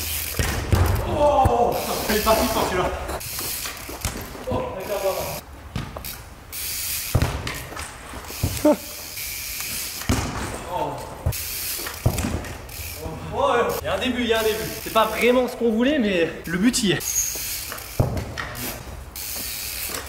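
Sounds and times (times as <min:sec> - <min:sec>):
bike wheels landing thuds: 0:00.0 - 0:04.8, 0:07.0 - 0:08.8, 0:09.7 - 0:12.9, 0:17.3 - 0:20.0
ball being kicked: 0:00.4 - 0:01.6, 0:07.2 - 0:07.6, 0:10.1 - 0:10.6, 0:12.0 - 0:12.6.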